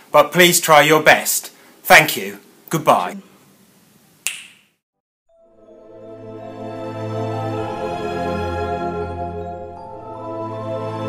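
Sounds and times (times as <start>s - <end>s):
finger snap: 4.2s - 4.7s
music with sustained low notes: 5.3s - 11.0s.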